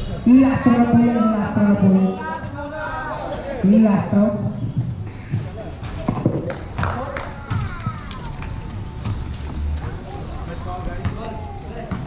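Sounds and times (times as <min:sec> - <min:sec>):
voices calling out: 0:00.0 - 0:12.0
basketball bouncing on concrete: 0:04.4 - 0:08.0, 0:11.0 - 0:11.3.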